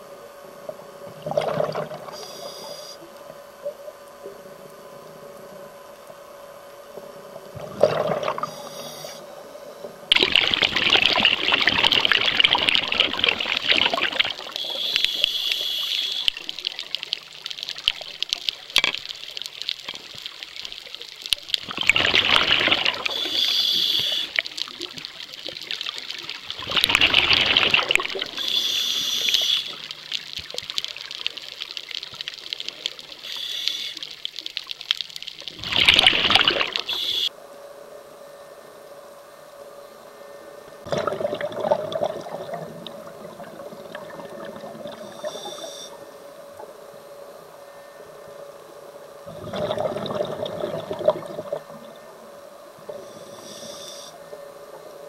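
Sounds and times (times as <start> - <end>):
exhaled bubbles rushing: 1.1 - 2.2, 7.5 - 8.6, 10.1 - 14.9, 20.0 - 23.5, 24.3 - 28.5, 35.5 - 37.0, 40.8 - 45.4, 49.3 - 52.1
regulator inhale hiss: 2.1 - 3.1, 8.4 - 10.0, 14.5 - 16.4, 23.0 - 24.6, 28.2 - 30.2, 33.1 - 34.2, 36.8 - 37.4, 44.9 - 46.2, 52.9 - 54.4.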